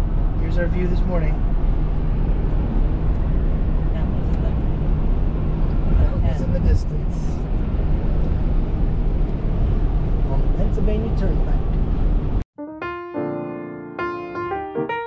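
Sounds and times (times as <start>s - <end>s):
car engine rumble: 0.0s - 12.4s.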